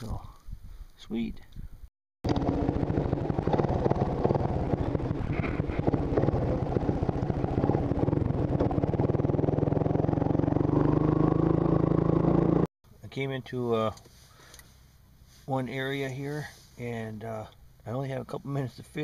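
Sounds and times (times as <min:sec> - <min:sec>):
atv engine running: 0:02.2 - 0:12.7.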